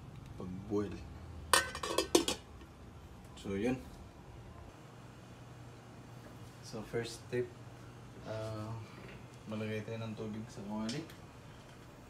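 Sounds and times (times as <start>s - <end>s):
pot lid clattering on pot: 1.6s - 2.5s.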